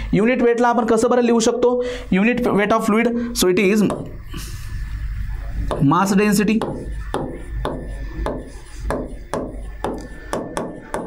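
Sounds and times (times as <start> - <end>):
stylus tapping on screen: 6.5 - 11.0.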